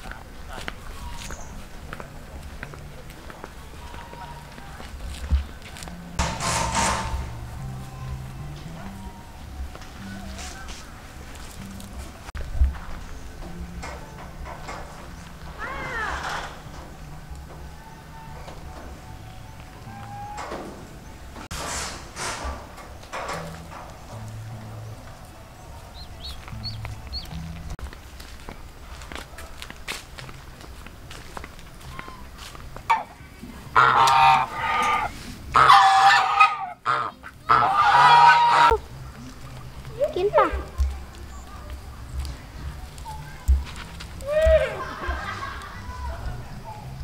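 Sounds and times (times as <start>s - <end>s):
geese honking loudly: 17.6s - 21.3s, 32.9s - 38.9s
animal call: 19.8s - 20.6s.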